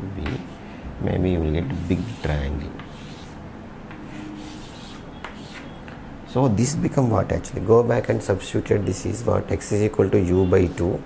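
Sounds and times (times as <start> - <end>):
chalk scraping on chalkboard: 1.6 - 5.9, 10.6 - 11.0.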